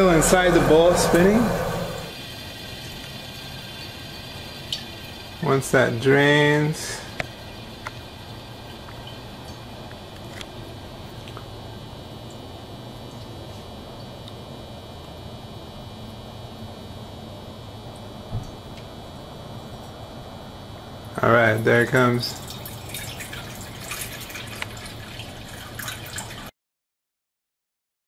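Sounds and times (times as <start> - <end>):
low hum: 0.0 - 2.4
centrifuge high whine: 0.0 - 2.6.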